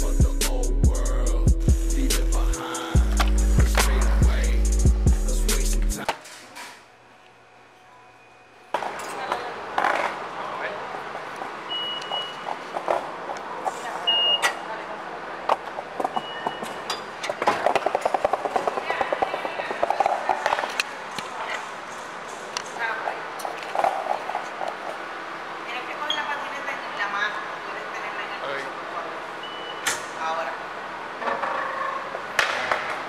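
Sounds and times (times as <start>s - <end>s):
indistinct voices: 0.0s - 6.2s
short high beeps: 11.7s - 12.5s, 14.1s - 14.6s, 29.4s - 29.9s.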